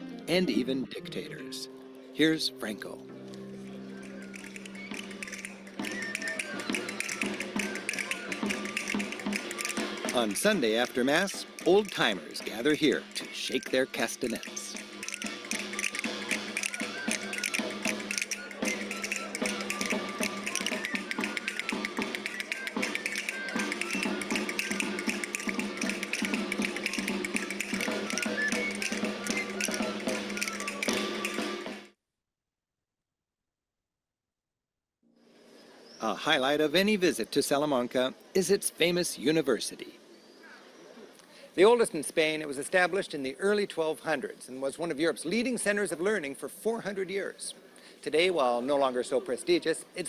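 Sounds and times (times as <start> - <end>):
folk dance music: 2.3 - 31.9
castanets clicking: 4.0 - 10.6, 14.2 - 31.4.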